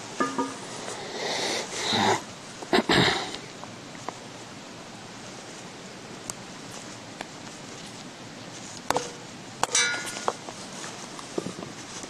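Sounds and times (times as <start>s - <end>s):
metallic clinks of pot: 0.2s - 0.8s, 9.0s - 10.4s.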